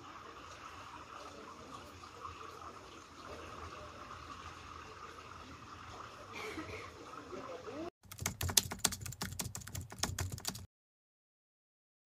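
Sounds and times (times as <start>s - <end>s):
keyboard typing clicks: 8.0s - 10.7s.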